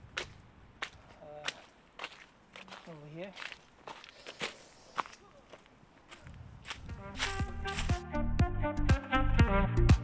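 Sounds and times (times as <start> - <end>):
footsteps on dry leaves: 0.0 - 8.0
background music: 6.9 - 10.0.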